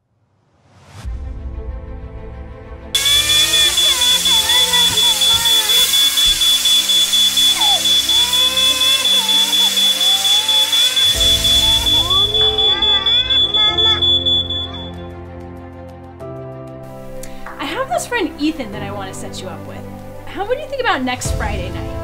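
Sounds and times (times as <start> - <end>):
hiss: 3.0 - 12.5
smoke alarm pulsing tone: 3.0 - 15.0
voices: 3.0 - 15.0, 17.6 - 21.8.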